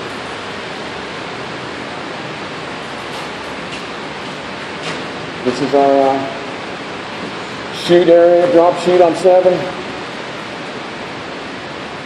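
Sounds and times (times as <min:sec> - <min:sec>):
air-filtering machines rushing: 0:00.0 - 0:12.0.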